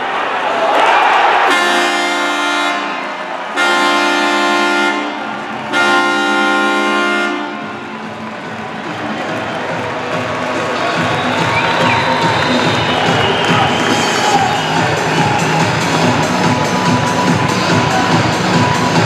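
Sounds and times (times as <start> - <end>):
crowd noise: 0.0 - 19.0
deep goal horn blasts: 1.5 - 8.1.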